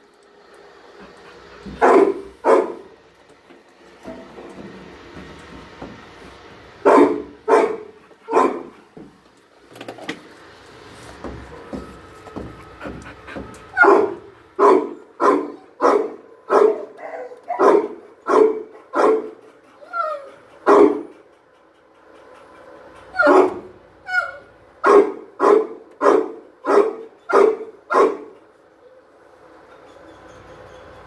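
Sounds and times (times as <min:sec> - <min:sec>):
dog barking: 0:01.8 - 0:02.9, 0:06.8 - 0:08.7, 0:13.8 - 0:19.4, 0:20.7 - 0:21.1, 0:23.2 - 0:28.4.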